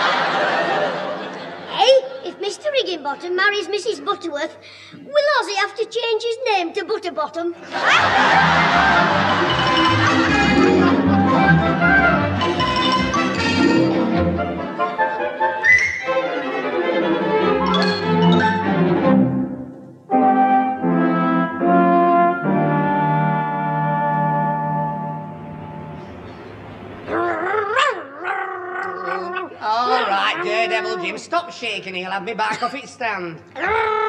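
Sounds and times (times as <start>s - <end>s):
brass-led orchestral music: 8.0s - 26.0s.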